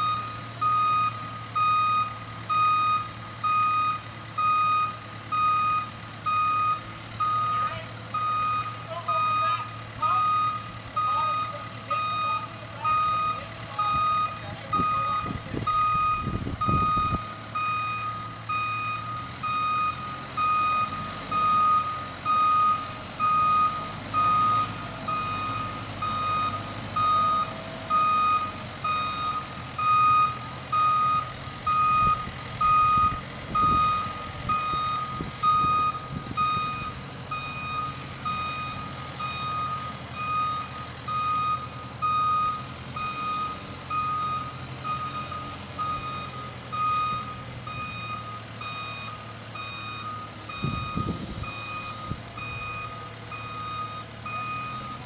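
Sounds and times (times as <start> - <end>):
diesel engine: 0.0 - 55.0
reversing alarm beeping: 0.0 - 55.0.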